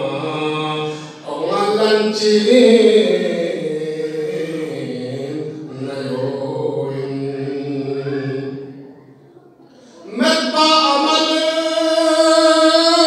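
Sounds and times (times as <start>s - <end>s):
man chanting into microphone: 0.0s - 9.0s, 9.9s - 13.0s.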